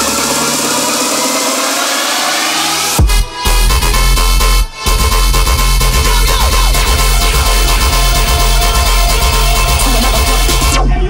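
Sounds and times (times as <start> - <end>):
electronic dance music: 0.0 - 11.0
heavy bass: 0.0 - 11.0.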